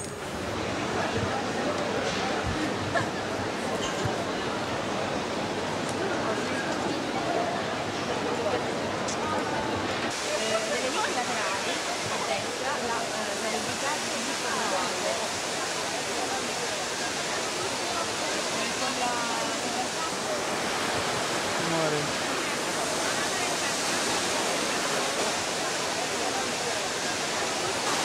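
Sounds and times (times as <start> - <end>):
faint crowd chatter: 0.0 - 28.0
fountain water rushing: 0.0 - 28.0.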